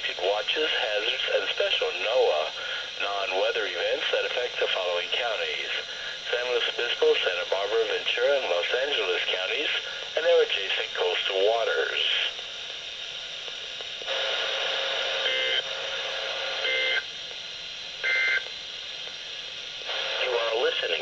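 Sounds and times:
radio hiss: 0.0 - 21.0.

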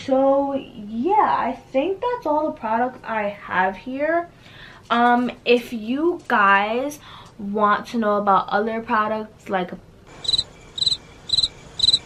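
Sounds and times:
cricket chirping: 10.1 - 12.0.

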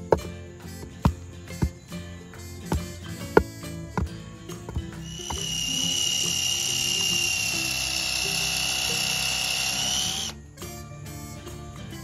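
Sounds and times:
dull knocks pounding dirt: 0.0 - 6.4
cordless drill whining: 5.0 - 10.4.

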